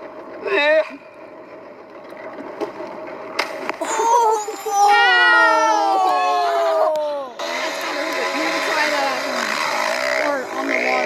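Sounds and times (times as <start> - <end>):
outboard motor running: 0.0 - 4.4, 7.0 - 11.0
wind: 0.0 - 11.0.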